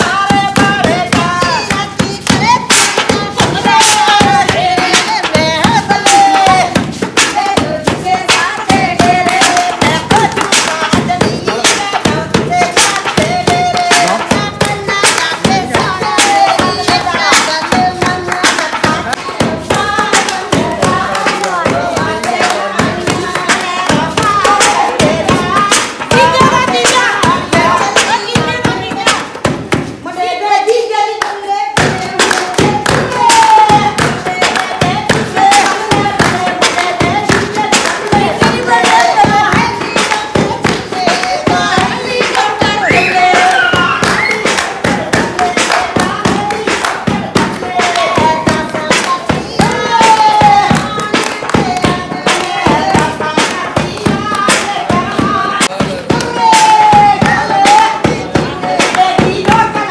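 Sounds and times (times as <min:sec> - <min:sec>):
rhythmic hand-clapping: 0:00.0 - 0:59.9
women singing: 0:00.0 - 0:59.9.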